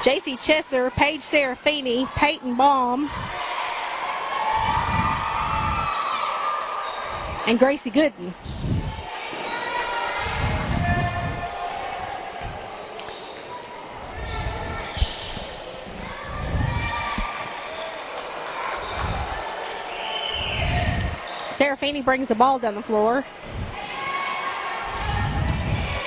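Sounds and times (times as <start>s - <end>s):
scattered voices in a gym: 0.0s - 26.0s.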